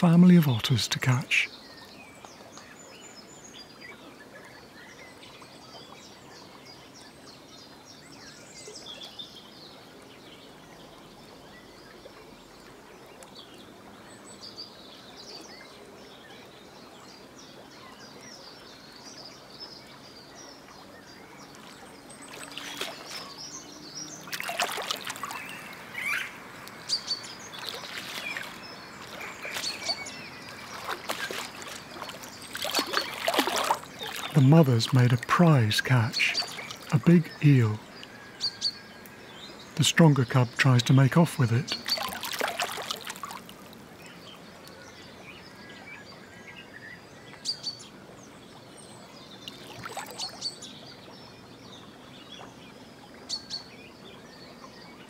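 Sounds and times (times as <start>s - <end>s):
quiet river ambience: 0.0s - 55.0s
faint bird chirps: 0.6s - 48.0s, 48.8s - 55.0s
otters splashing in shallow water: 2.1s - 39.3s, 39.9s - 45.8s, 49.3s - 53.3s.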